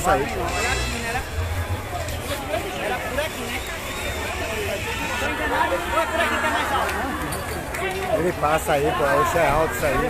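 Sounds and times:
babble of many voices: 0.0s - 10.0s.

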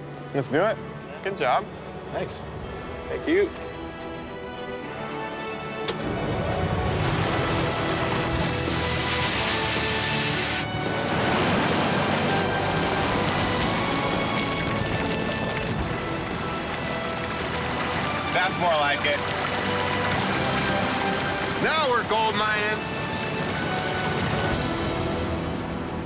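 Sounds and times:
background music: 0.0s - 26.0s
water rushing down metal sluice: 6.1s - 25.2s.

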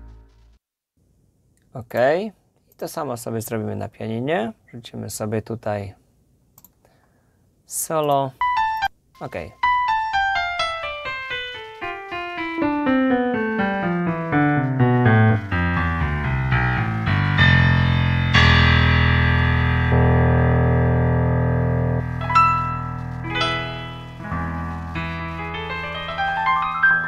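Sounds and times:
piano playing runs and chords: 8.4s - 8.9s, 9.6s - 27.0s.

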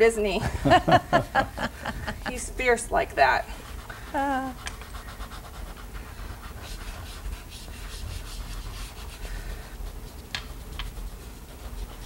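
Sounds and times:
chalk pastel scratching paper: 3.4s - 12.0s.

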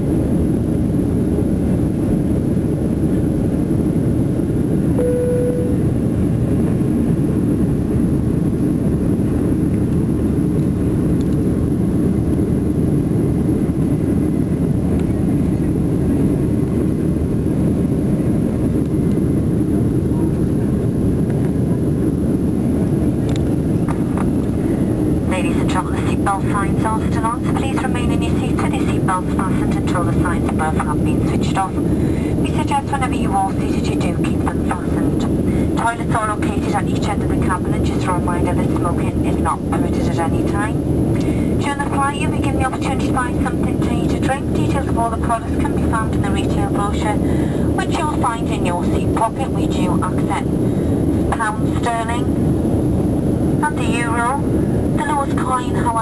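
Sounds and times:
airliner cabin engine rush: 0.0s - 56.0s
single tone: 5.0s - 6.0s
announcement over pa: 25.2s - 40.8s, 41.4s - 50.4s, 51.3s - 52.3s, 53.6s - 54.4s, 55.0s - 56.0s.

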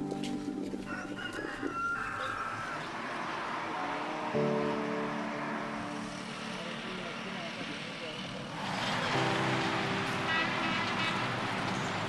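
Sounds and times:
motor vehicle passing: 0.4s - 12.0s.

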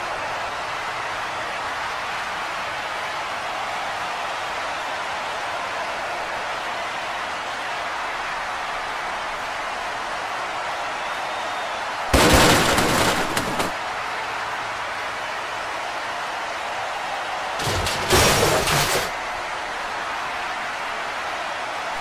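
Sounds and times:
loud crash effect: 12.1s - 13.7s, 17.6s - 19.1s.

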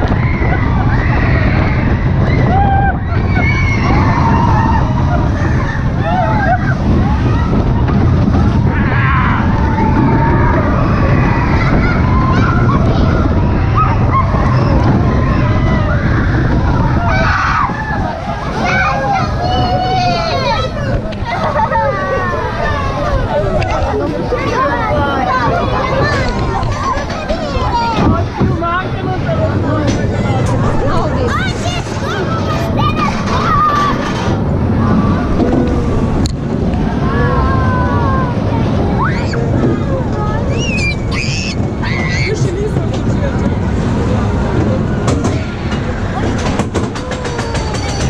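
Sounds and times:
faint riders' voices: 0.0s - 48.0s
people talking over one another: 0.0s - 48.0s
roller coaster train rumble: 0.0s - 48.0s
wind on microphone: 0.0s - 48.0s.

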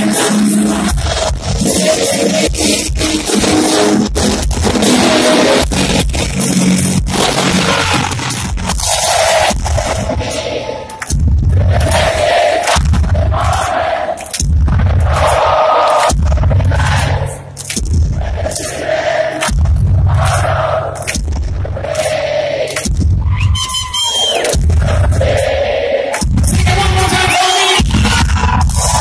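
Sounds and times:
live rock music: 0.0s - 29.0s
arena crowd noise: 8.8s - 29.0s.

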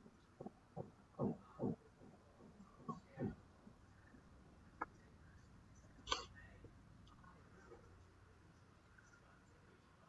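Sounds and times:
person's throat sound: 0.4s - 1.8s.

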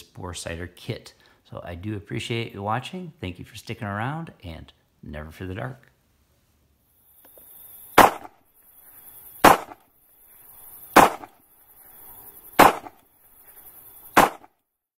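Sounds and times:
steady high hiss: 0.0s - 14.5s
sharp bangs: 7.9s - 8.4s, 9.4s - 9.9s, 10.9s - 11.4s, 12.5s - 13.1s, 14.1s - 14.5s.

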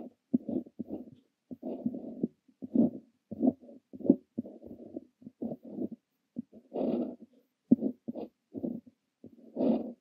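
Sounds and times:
pen nib scratching on paper: 0.0s - 10.0s.

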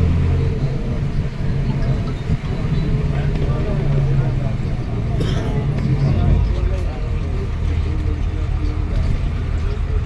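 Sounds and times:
people talking: 0.0s - 10.0s
vehicle engine and road rumble: 0.0s - 10.0s.

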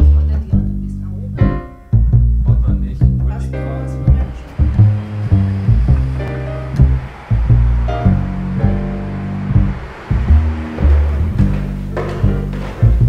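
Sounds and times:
deep bass line: 0.0s - 13.0s
soft high sound wash: 3.6s - 12.0s.

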